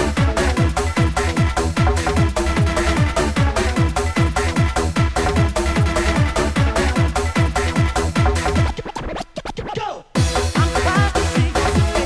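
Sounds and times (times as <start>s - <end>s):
electronic dance music kick drum: 0.0s - 12.0s
turntable scratching: 5.3s - 12.0s.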